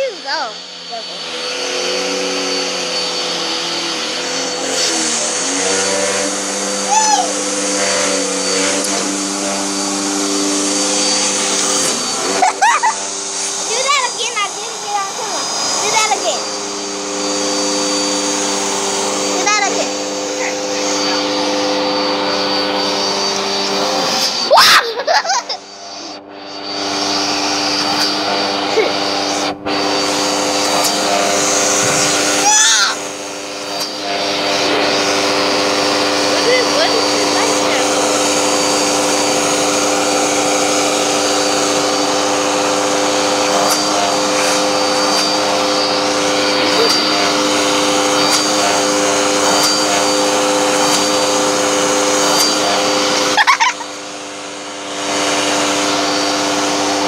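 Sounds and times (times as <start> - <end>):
child's voice: 0.0 - 1.2, 6.8 - 7.4, 13.6 - 16.5, 19.3 - 21.2, 32.4 - 33.0, 36.3 - 37.9
vacuum cleaner running: 0.0 - 57.0.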